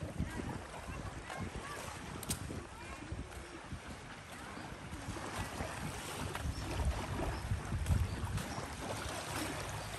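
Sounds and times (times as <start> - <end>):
small waves lapping on shore: 0.0 - 9.9
wind buffeting microphone: 0.0 - 9.9.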